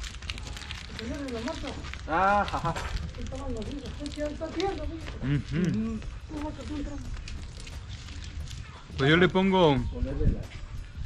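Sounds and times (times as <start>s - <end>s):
people talking in background: 0.8s - 10.9s.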